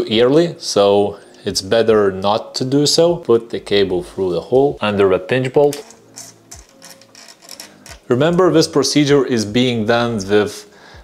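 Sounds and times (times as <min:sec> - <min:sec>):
steel cable ticking and scraping: 0:05.7 - 0:08.1.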